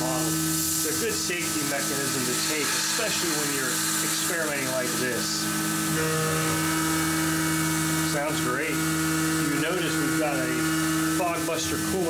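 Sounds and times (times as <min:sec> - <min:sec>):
cutting hiss: 0:00.0 - 0:12.0
milling machine spindle whine: 0:00.0 - 0:12.0.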